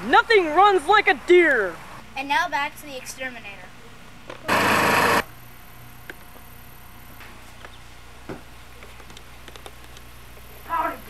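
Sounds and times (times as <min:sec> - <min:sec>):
low steady hum: 0:00.0 - 0:11.0
loud burst of static hiss: 0:04.4 - 0:05.6.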